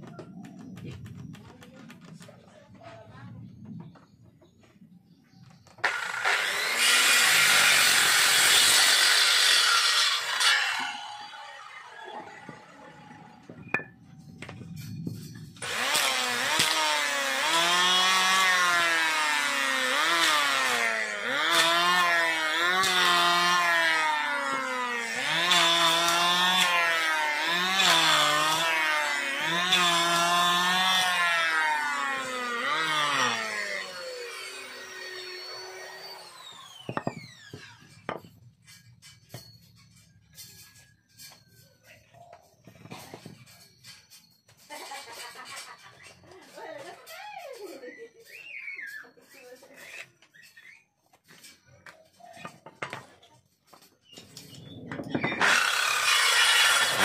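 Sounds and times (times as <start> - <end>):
electric planer shaving wood: 5.8 - 13.4, 15.6 - 38.2, 55.3 - 57.0
circular saw cutting wood: 5.8 - 14.0, 15.4 - 41.5, 53.7 - 57.0.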